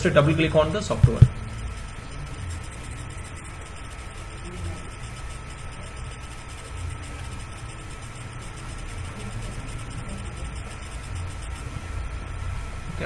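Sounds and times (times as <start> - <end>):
low hum: 0.0 - 13.0
thin steady whine: 0.0 - 13.0.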